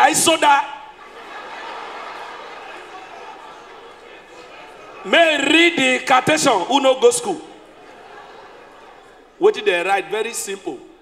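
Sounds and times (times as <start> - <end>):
audience laughing: 0.1 - 10.4.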